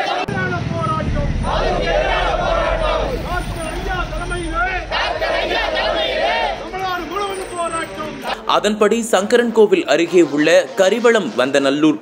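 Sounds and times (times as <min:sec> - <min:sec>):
crowd shouting slogans: 0:00.0 - 0:00.4, 0:01.4 - 0:03.4, 0:04.8 - 0:07.4
low rumble: 0:00.3 - 0:08.5.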